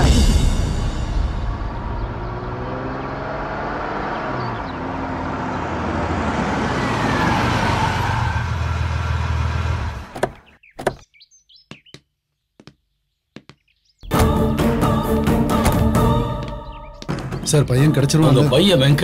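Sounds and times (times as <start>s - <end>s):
car engine running: 0.0s - 6.5s.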